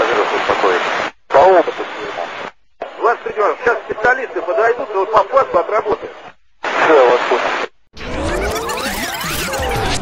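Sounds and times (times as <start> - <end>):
voices over radio channel: 0.0 - 7.7.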